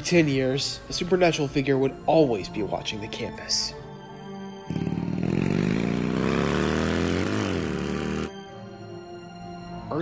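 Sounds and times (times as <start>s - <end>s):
car engine accelerating: 4.7s - 8.3s.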